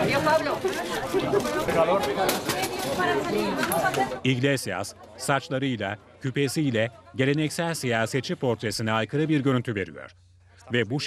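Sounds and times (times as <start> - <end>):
crowd chattering: 0.0 - 11.0.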